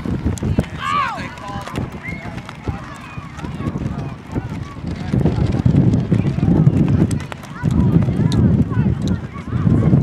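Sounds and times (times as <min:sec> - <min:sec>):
distant children's voices: 0:00.0 - 0:10.0
wind rumbling on microphone: 0:00.0 - 0:10.0.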